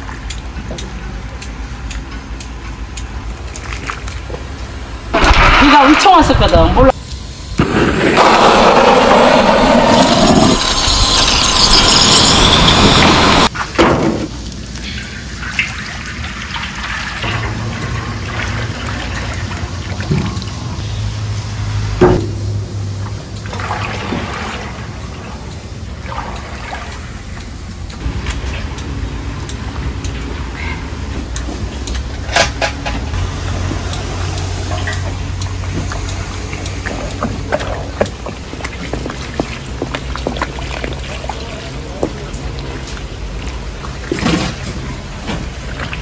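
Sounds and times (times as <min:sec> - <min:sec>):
blowtorch gas flame rushing: 0:07.5 - 0:13.5.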